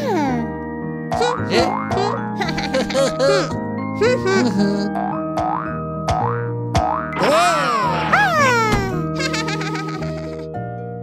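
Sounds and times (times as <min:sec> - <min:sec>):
children's background music: 0:00.0 - 0:06.3, 0:07.2 - 0:10.9
cartoon boing sound effects: 0:01.2 - 0:02.2
squeaky cartoon voice: 0:07.2 - 0:09.0.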